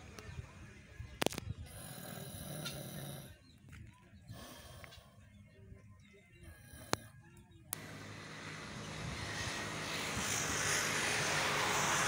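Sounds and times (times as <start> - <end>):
outdoor background noise: 0.0 - 12.0
man snoring: 1.7 - 3.4, 6.5 - 7.1.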